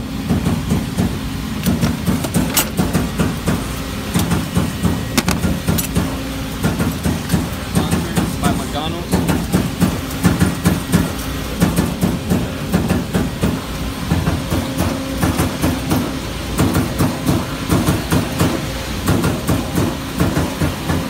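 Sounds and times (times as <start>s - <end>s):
punch press humming: 0.0s - 21.0s.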